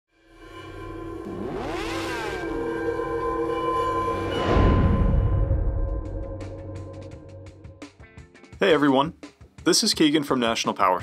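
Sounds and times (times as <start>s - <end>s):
droning tones: 0.1s - 7.9s
rising sweep: 0.2s - 7.9s.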